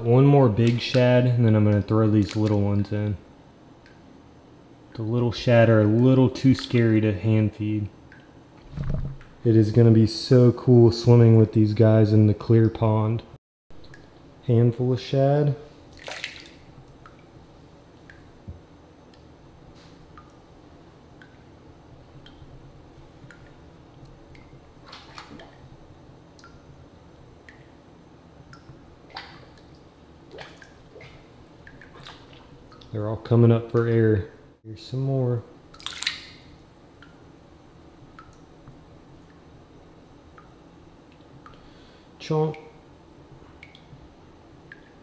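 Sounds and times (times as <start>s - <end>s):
low steady background noise: 0.0s - 45.0s
water drips and plops: 2.2s - 2.6s, 15.9s - 17.3s, 22.2s - 22.5s, 23.2s - 25.7s, 26.3s - 26.7s, 27.4s - 27.8s, 28.5s - 33.0s, 35.7s - 37.2s, 38.1s - 39.5s, 43.6s - 44.0s, 44.6s - 45.0s
low rumble: 8.6s - 9.5s
small fish splashing into water: 15.9s - 16.6s, 35.8s - 36.5s.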